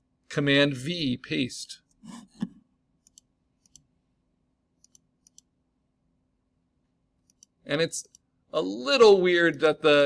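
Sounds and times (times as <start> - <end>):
computer mouse double-clicks: 3.0 - 3.9, 4.8 - 5.5, 7.2 - 8.2.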